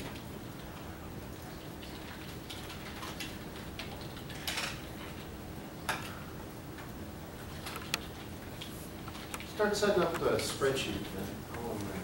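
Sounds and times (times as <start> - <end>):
faint steady hum: 0.0 - 12.0
small clicks and rustles: 7.5 - 12.0.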